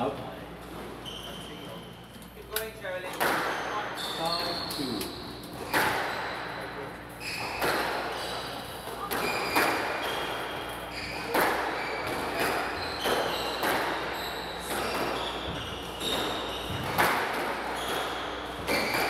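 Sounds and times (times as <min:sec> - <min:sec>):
shoe squeaks on wooden floor: 0:00.9 - 0:01.9, 0:03.4 - 0:19.0
squash ball hits echoing: 0:03.1 - 0:04.0, 0:05.5 - 0:06.7, 0:07.3 - 0:19.0.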